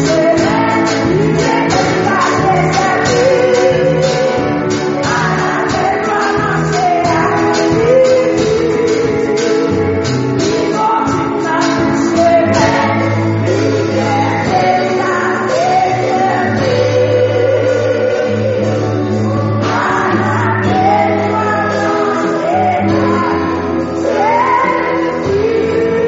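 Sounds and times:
gospel worship singing: 0.0s - 26.0s
instrumental accompaniment: 0.0s - 26.0s.

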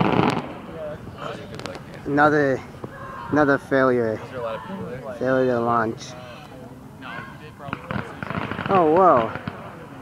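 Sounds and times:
fireworks crackling pops: 0.0s - 0.7s, 1.4s - 2.2s, 7.7s - 10.0s
crowd voices: 0.0s - 10.0s.

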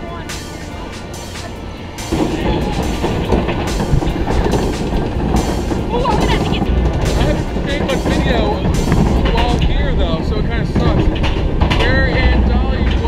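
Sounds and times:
background music: 0.0s - 13.0s
ride mechanical clatter: 0.0s - 13.0s.

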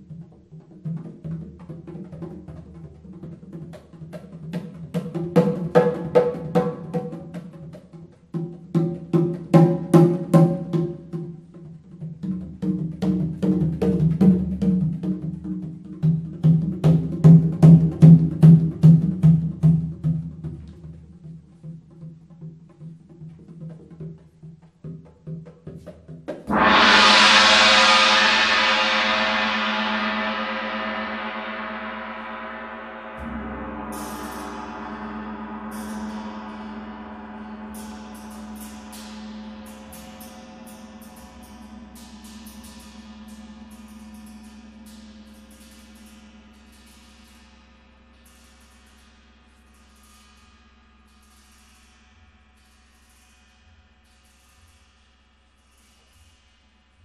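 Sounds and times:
hand drums playing: 0.0s - 38.9s
large gong ringing: 26.5s - 46.5s.

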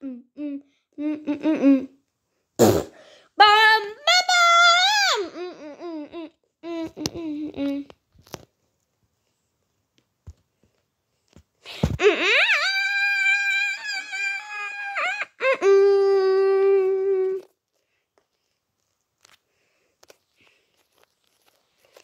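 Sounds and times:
child wailing: 4.0s - 6.9s, 12.0s - 17.4s.

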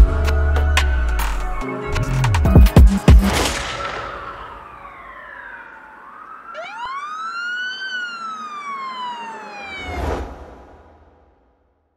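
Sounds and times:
drill instrumental music: 0.0s - 4.0s
siren-like sliding tones: 3.6s - 10.4s.

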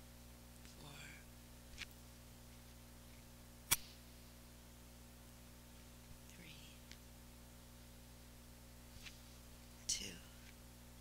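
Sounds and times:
low steady hum: 0.0s - 11.0s
sharp click: 3.7s - 4.0s.

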